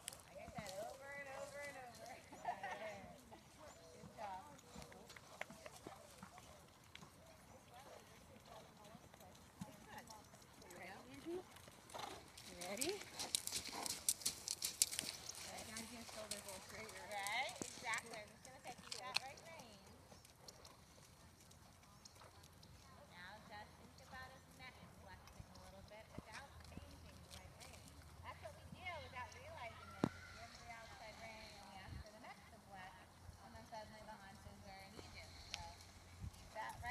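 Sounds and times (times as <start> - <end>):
horse hooves on sand: 0.0 - 36.9.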